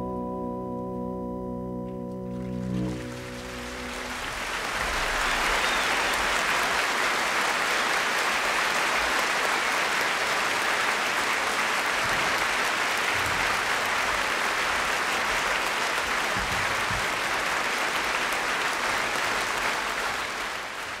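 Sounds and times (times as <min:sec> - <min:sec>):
audience applauding: 0:02.3 - 0:21.0.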